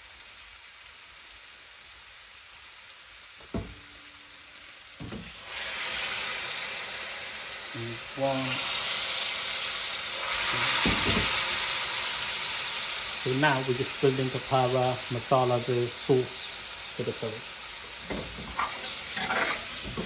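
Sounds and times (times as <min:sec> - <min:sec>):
sizzling and hissing: 0:00.0 - 0:20.0
knocks: 0:03.4 - 0:03.9, 0:05.0 - 0:05.3
water pouring into hot pan: 0:03.4 - 0:20.0.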